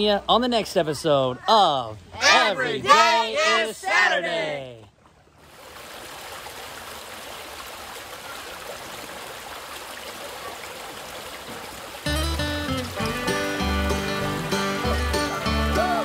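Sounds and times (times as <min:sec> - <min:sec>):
stream running over rocks: 0:04.7 - 0:16.0
music with a bass line: 0:12.1 - 0:16.0.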